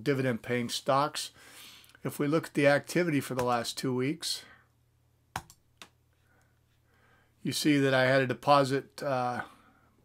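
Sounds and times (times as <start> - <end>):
computer mouse clicking: 5.4 - 6.0.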